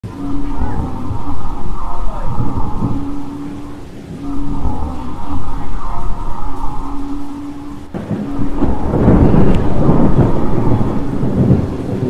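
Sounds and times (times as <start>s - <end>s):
rain: 0.0s - 12.0s
steady droning tone: 0.0s - 12.0s
thunder rumbling: 0.0s - 12.0s.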